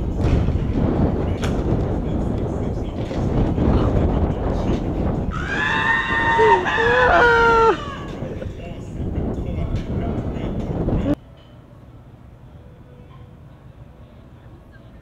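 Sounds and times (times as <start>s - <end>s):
low rumbling noise: 0.0s - 11.2s.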